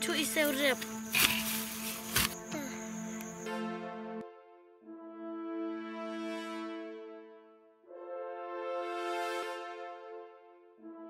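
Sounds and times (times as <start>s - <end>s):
music with long held tones: 0.0s - 11.0s
hoe scraping soil: 0.3s - 2.7s
hoe thud: 1.2s - 2.4s.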